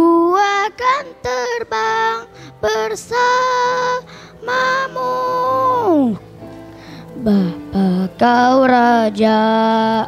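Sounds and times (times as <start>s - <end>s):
boy singing into a microphone: 0.0s - 6.2s, 7.2s - 10.0s
electronic keyboard accompaniment: 0.0s - 10.0s.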